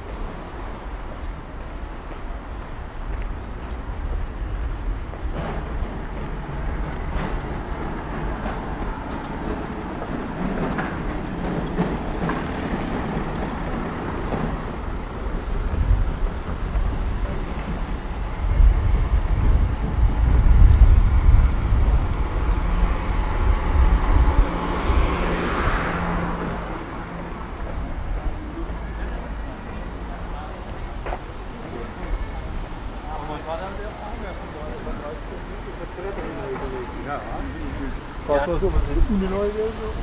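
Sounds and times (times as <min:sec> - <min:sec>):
low traffic rumble: 0:00.0 - 0:40.0
vehicle passing close: 0:05.2 - 0:30.6.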